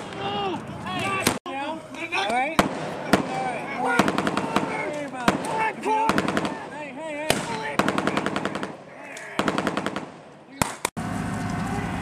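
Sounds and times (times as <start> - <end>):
men shouting: 0.0 - 1.3, 2.1 - 9.6
gunshots: 2.5 - 11.0.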